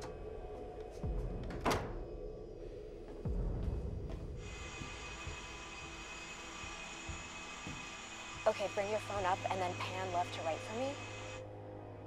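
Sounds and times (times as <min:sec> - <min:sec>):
film score drone: 0:00.0 - 0:12.0.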